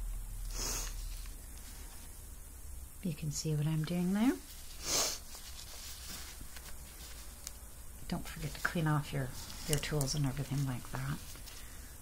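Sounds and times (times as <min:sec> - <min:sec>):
low steady hum: 0:00.0 - 0:12.0
short hiss: 0:00.4 - 0:01.3, 0:04.7 - 0:05.4
faint rustling and scratches: 0:00.8 - 0:02.2, 0:03.5 - 0:12.0.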